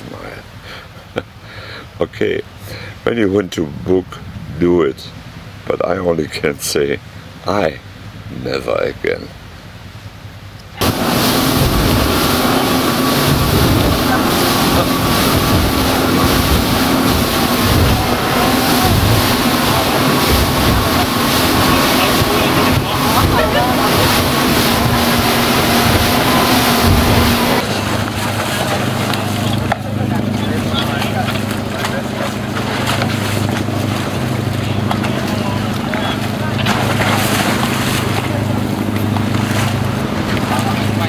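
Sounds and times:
rush of wind and water: 0.0 - 41.0
low engine hum: 9.4 - 41.0
speedboat engine running: 10.7 - 41.0
wind noise: 10.8 - 28.2.

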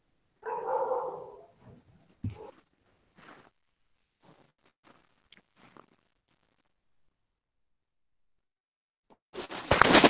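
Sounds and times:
dog barking: 0.4 - 2.6.

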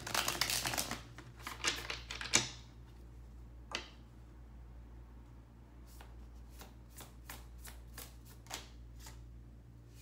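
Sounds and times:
cards being shuffled: 0.0 - 2.5, 5.9 - 9.2.

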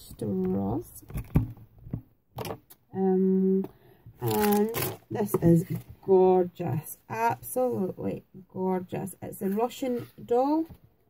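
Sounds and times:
clicks and rustles of packaging: 4.2 - 5.9.

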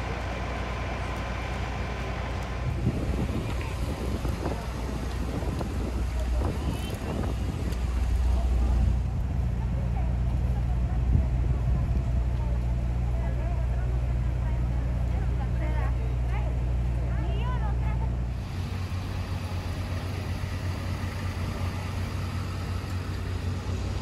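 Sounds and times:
vehicle passing on wet pavement: 0.0 - 12.7, 18.3 - 24.0
faint voices: 0.0 - 24.0
idling engines droning: 0.0 - 24.0.

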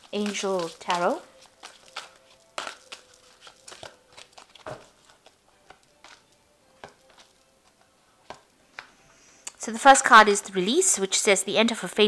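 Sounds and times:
cards clicking and rustling: 0.0 - 9.0.

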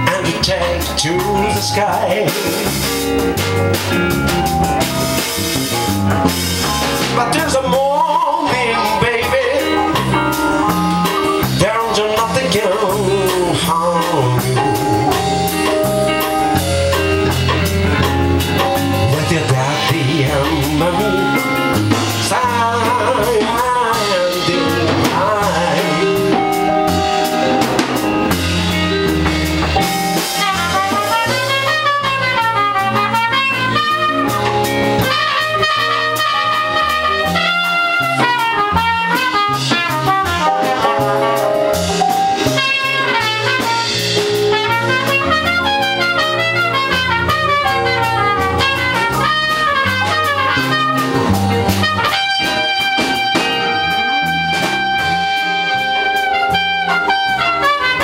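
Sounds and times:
live band playing: 0.0 - 58.0
trumpet playing lead: 0.0 - 58.0.

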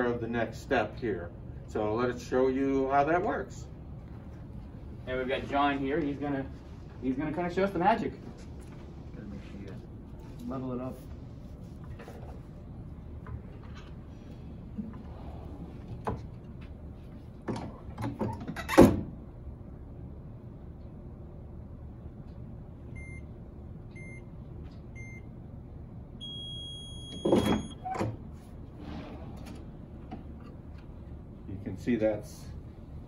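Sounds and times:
timer beeps: 23.0 - 23.2, 26.2 - 27.8.

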